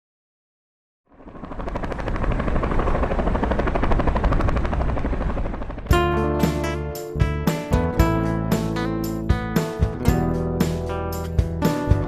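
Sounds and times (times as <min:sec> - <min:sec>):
helicopter rotor pulsing: 0:01.1 - 0:08.8
guitar music: 0:05.9 - 0:12.0.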